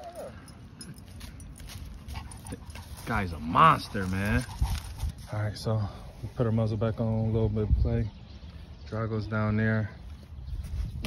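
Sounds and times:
dog paws on pavement: 0:00.8 - 0:05.6
footsteps on leafy pavement: 0:00.9 - 0:06.3.

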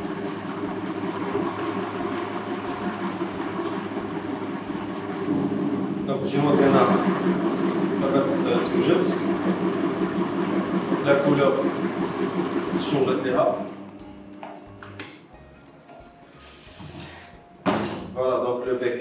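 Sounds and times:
stand mixer motor whirring: 0:00.0 - 0:14.4
mixer head clunk: 0:00.0 - 0:15.2, 0:16.8 - 0:18.3.

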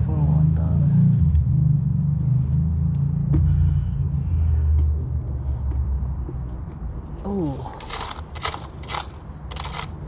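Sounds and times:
coins clinking and rattling: 0:07.8 - 0:10.0.

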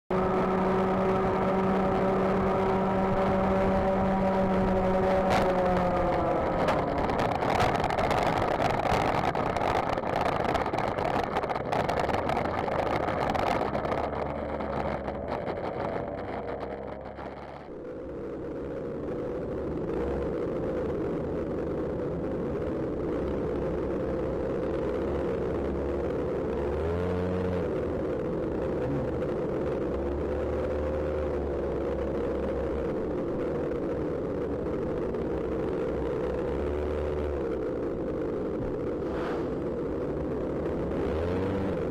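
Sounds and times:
racing kart engine revving: 0:00.1 - 0:17.7, 0:24.3 - 0:41.9.

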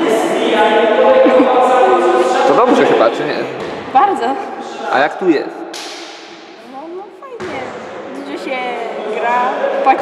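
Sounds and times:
voices in echoing hall: 0:00.0 - 0:10.0
sharp smack: 0:05.7 - 0:06.6
sudden thud: 0:07.4 - 0:07.9.

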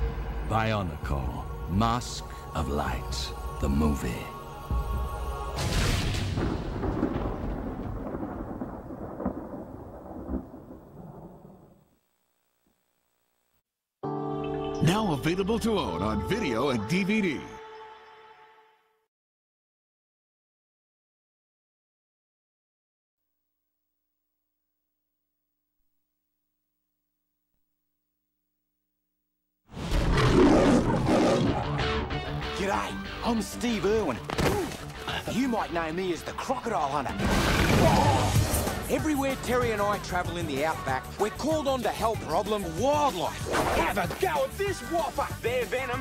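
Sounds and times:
sharp thunder cracks: 0:05.6 - 0:11.8
thunder rumbling: 0:05.6 - 0:11.9
crocodile roar: 0:30.0 - 0:31.9.

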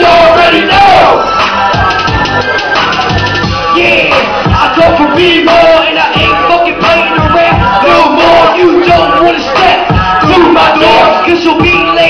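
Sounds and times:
crowd yelling: 0:00.0 - 0:12.0
loud hip hop beat: 0:00.0 - 0:12.0.

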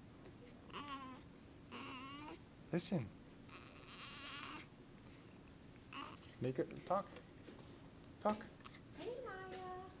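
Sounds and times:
baby whimpering: 0:00.7 - 0:02.4, 0:03.5 - 0:04.7, 0:05.9 - 0:06.4.

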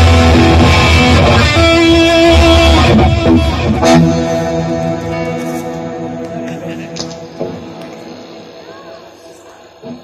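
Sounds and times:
electric guitar playing live: 0:00.0 - 0:10.0.

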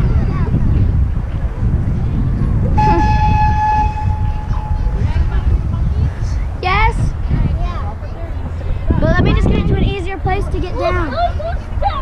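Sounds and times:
wind rumble on microphone: 0:00.0 - 0:12.0
train whistle blowing: 0:02.8 - 0:04.9.

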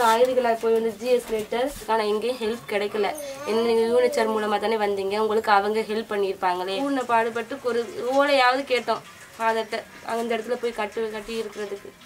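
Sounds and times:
woman talking: 0:00.0 - 0:12.0.

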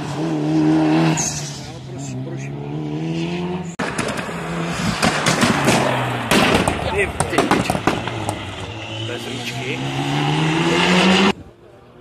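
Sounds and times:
car engine accelerating hard: 0:00.0 - 0:11.4
sharp exhaust pops: 0:03.8 - 0:08.4.

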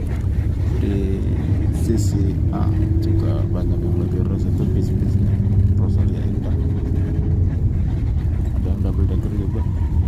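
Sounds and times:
bus engine drone: 0:00.0 - 0:10.0
road noise: 0:00.0 - 0:10.0.

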